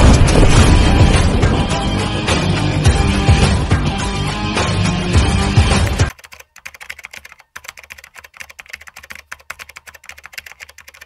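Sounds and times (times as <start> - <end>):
background music: 0.0 - 11.0
keyboard typing clicks: 6.1 - 11.0.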